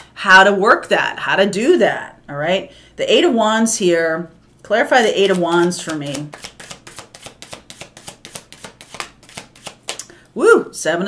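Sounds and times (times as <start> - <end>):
cards being shuffled: 5.0 - 10.1.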